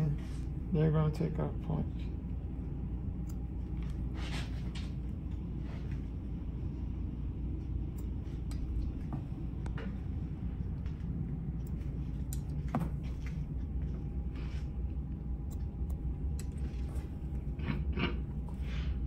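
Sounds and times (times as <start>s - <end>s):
low room rumble: 0.0s - 19.0s.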